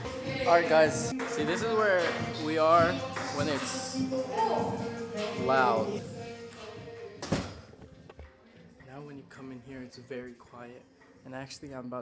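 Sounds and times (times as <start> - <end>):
music from another room: 0.0 - 11.3.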